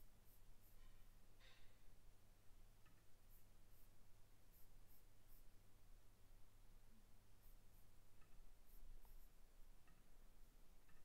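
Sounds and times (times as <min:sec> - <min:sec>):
faint high-pitched ticks: 0:00.0 - 0:01.8, 0:02.6 - 0:05.6, 0:06.9 - 0:11.0.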